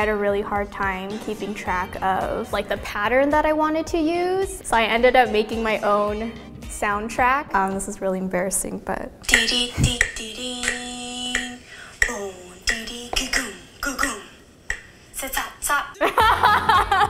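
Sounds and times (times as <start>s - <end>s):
woman singing syllables: 9.2s - 14.4s
mouth clicks keeping a beat: 9.2s - 14.9s
woman laughing: 16.0s - 17.0s.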